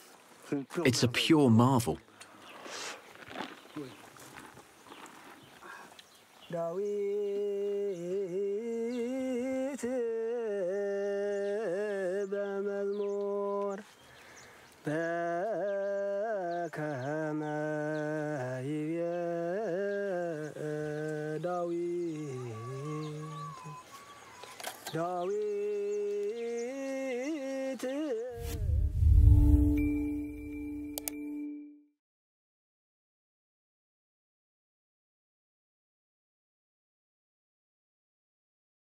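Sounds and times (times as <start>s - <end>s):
faint outdoor ambience: 0.0s - 31.4s
person singing unaccompanied: 6.5s - 13.9s, 14.8s - 28.5s.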